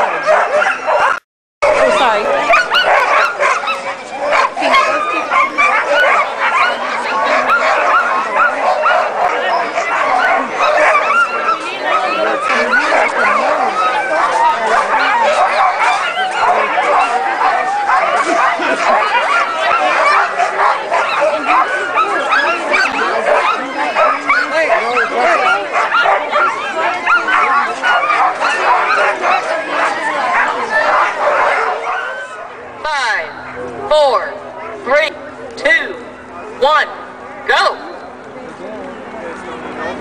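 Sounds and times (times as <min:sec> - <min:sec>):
sled dogs barking and yelping: 0:00.0 - 0:33.9
crowd voices: 0:00.0 - 0:40.0.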